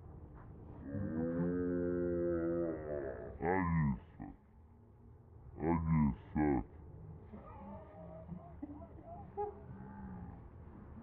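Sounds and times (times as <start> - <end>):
faint human vocal sounds: 0.8 - 4.4.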